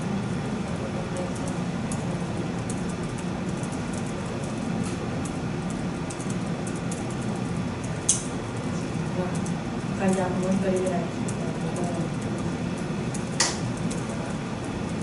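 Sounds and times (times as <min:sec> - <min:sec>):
pens and paper clicking rustling: 0:00.3 - 0:15.0.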